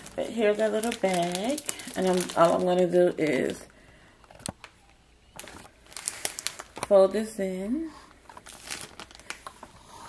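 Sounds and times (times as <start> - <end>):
plastic bag crinkling: 0.0 - 7.3, 8.1 - 10.0.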